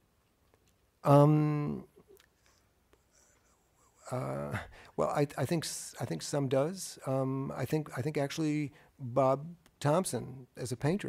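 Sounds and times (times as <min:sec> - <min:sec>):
small quiet clicks: 0:00.2 - 0:00.9.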